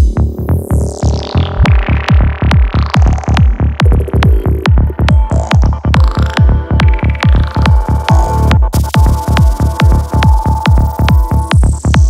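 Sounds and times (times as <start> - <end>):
kick drum bass thumps: 0.0 - 0.7, 1.3 - 12.0.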